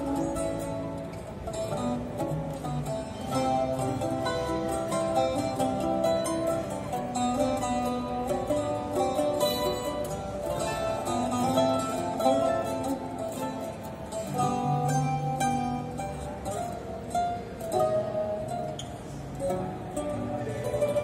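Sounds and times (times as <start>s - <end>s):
plucked string trio playing: 0.0s - 21.0s.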